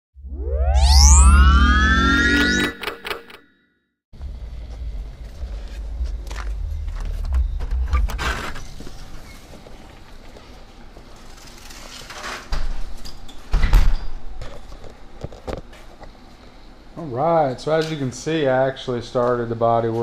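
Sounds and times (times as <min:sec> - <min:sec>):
synthesized rising tones over bass: 0:00.2 - 0:03.5.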